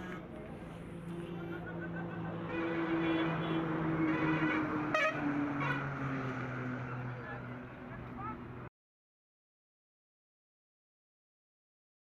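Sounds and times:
vehicle engine hum: 0.0 - 8.7
car horn toot: 2.4 - 5.9.

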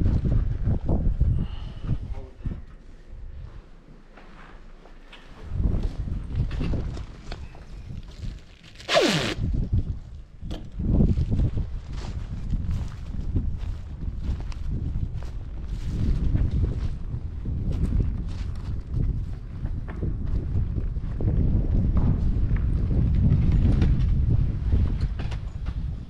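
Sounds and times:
wind rumbling on microphone: 0.0 - 3.7, 5.4 - 26.0
footsteps: 1.9 - 7.2.

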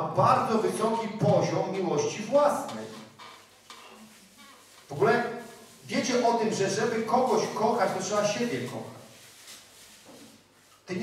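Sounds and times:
man speaking into microphone: 0.0 - 3.1, 4.9 - 9.1
faint hiss: 0.4 - 11.0
soft rustles: 2.1 - 11.0.

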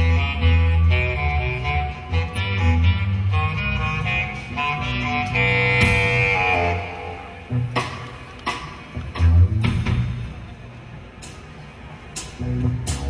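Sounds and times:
jazz fusion band playing: 0.0 - 8.2.

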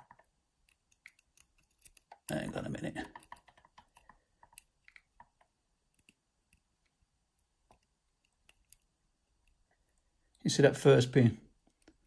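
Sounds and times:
faint metallic ticks of lock picking: 7.6 - 10.1.

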